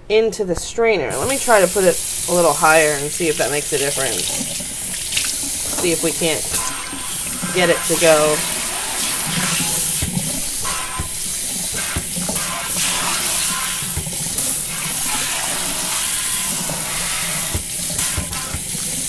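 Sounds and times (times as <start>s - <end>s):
water running into sink: 1.1s - 19.0s.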